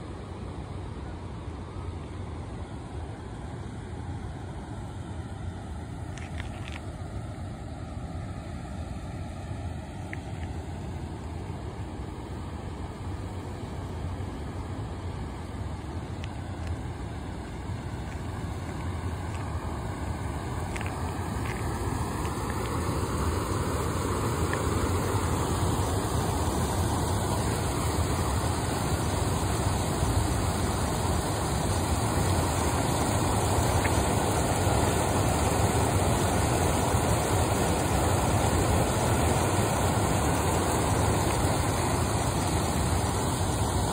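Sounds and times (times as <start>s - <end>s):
steady rushing outdoor noise: 0.0s - 43.9s.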